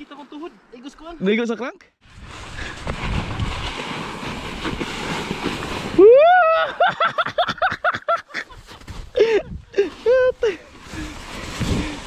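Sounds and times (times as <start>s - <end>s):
wind on microphone: 2.0s - 6.2s, 9.1s - 12.0s
tyres rumbling over snow: 2.1s - 6.3s.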